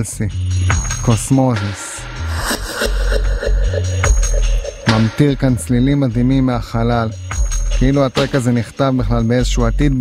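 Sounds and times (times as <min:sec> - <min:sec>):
psychedelic trance music: 0:00.3 - 0:08.6
deep pulsing bass: 0:02.0 - 0:08.0.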